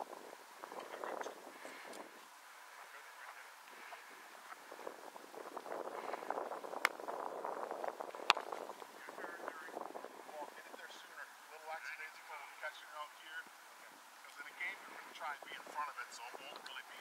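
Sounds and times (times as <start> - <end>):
faint voices: 0.0 - 6.7, 8.0 - 17.0.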